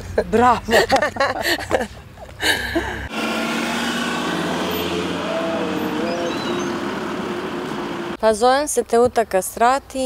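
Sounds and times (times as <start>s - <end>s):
street traffic noise: 0.0s - 10.0s
vehicle engine running: 3.1s - 8.2s.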